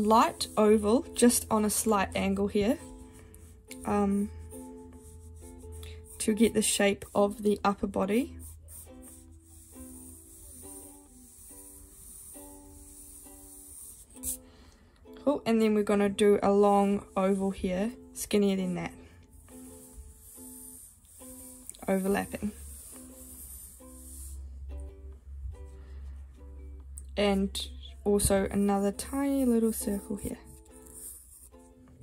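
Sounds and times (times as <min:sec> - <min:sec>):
plucked string instrument music: 0:23.4 - 0:32.0.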